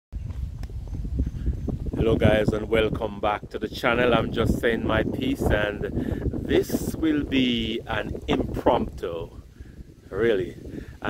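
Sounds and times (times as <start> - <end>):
low wind rumble: 0.1 - 11.0
footsteps on paved road: 0.2 - 2.0.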